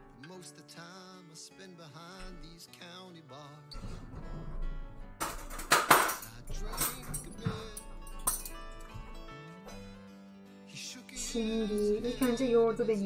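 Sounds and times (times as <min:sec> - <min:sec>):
background music: 0:00.0 - 0:13.0
tableware clattering on wooden board: 0:05.2 - 0:08.6.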